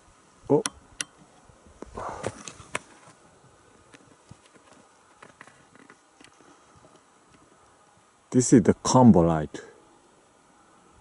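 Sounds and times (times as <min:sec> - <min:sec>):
handling rustle: 0:01.7 - 0:08.0.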